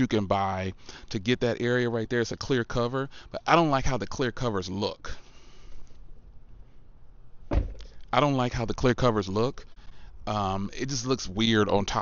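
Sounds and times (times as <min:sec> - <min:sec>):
car door shutting: 0:07.5 - 0:08.0.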